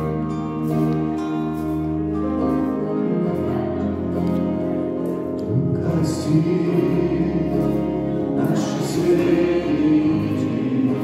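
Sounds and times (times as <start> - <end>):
acoustic guitars: 0.0 - 11.0
electric keyboard: 0.0 - 11.0
men and women singing: 5.8 - 11.0.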